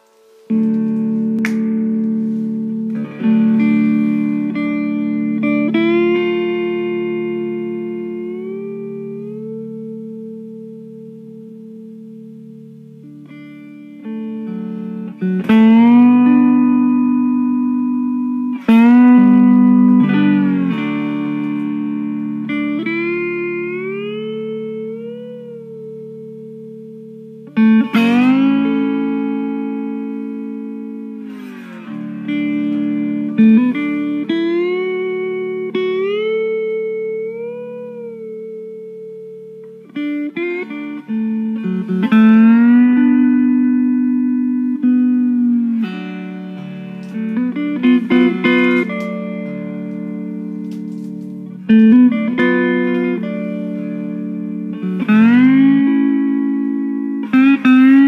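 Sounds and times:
guitar chords ringing: 0:00.0 - 0:58.0
guitar notes sliding upward: 0:00.0 - 0:58.0.

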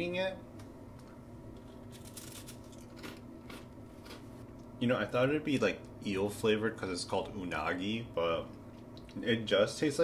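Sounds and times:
crunching of flaky pastry: 0:01.6 - 0:04.3.

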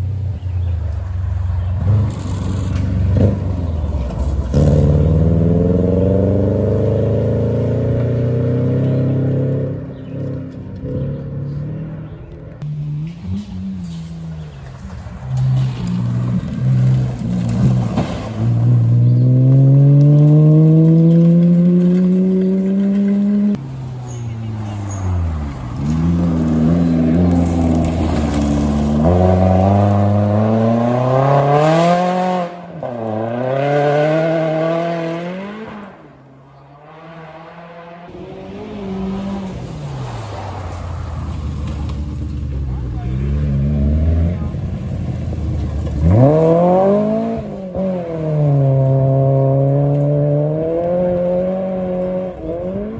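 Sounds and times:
rally car engine accelerating: 0:01.6 - 0:23.6, 0:24.6 - 0:40.5, 0:41.2 - 0:52.9.

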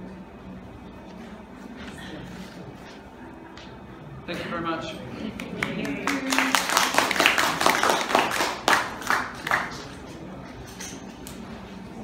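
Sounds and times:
audience applauding: 0:05.3 - 0:09.9.

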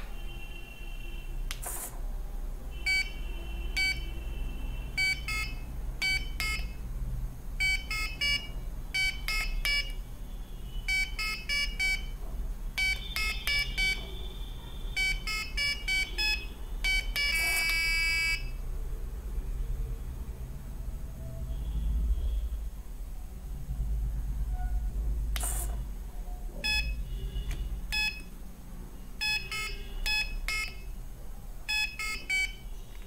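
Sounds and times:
held buzzer tone: 0:02.7 - 0:06.8, 0:07.6 - 0:10.0, 0:10.7 - 0:12.2, 0:12.8 - 0:18.6, 0:26.6 - 0:28.3, 0:29.2 - 0:30.9, 0:31.7 - 0:32.7
short electronic buzzer beeps: 0:02.7 - 0:06.8, 0:07.6 - 0:10.0, 0:10.6 - 0:12.2, 0:12.8 - 0:18.6, 0:26.6 - 0:28.3, 0:29.2 - 0:30.9, 0:31.7 - 0:32.8.

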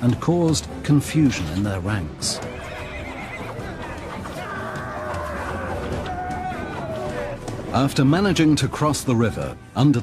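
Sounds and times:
music: 0:00.0 - 0:10.0
horses neighing: 0:02.2 - 0:07.6.

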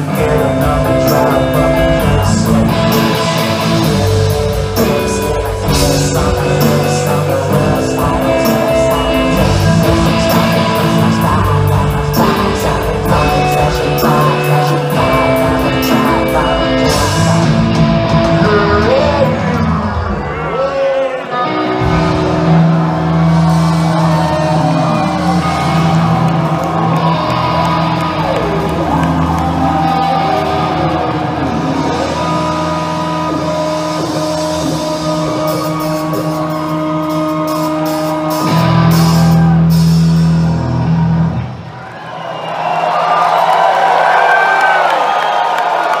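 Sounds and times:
live rock band playing: 0:00.0 - 0:42.0
crowd cheering and whooping: 0:08.4 - 0:46.0.

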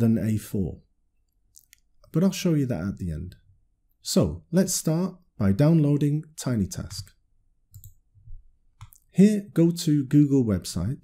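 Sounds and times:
faint computer mouse clicks: 0:07.0 - 0:08.0.

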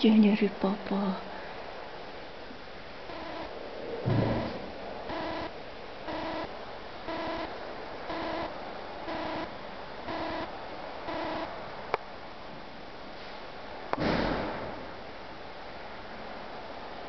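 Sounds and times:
short electronic beeps: 0:04.1 - 0:05.5, 0:06.1 - 0:06.5, 0:07.1 - 0:07.5, 0:08.1 - 0:08.5, 0:09.1 - 0:09.5, 0:10.1 - 0:10.5, 0:11.1 - 0:11.5.

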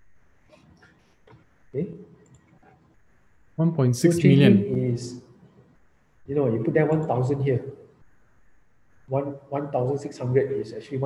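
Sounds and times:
computer mouse clicks: 0:02.2 - 0:02.8
person speaking a word: 0:03.8 - 0:04.8.

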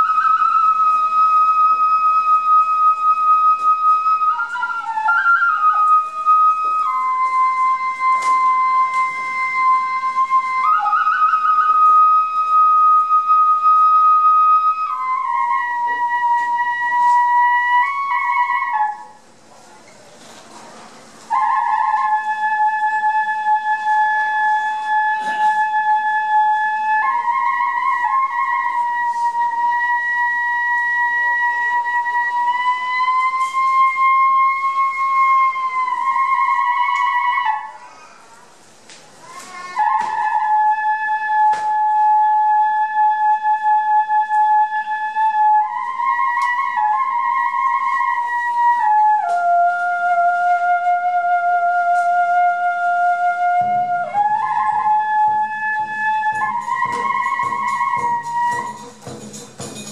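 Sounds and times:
bamboo flute melody: 0:00.0 - 0:19.3, 0:21.2 - 0:38.1, 0:39.2 - 0:59.9.

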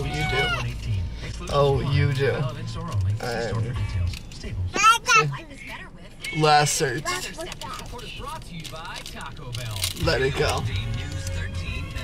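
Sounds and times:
quiet talking: 0:00.0 - 0:12.0.

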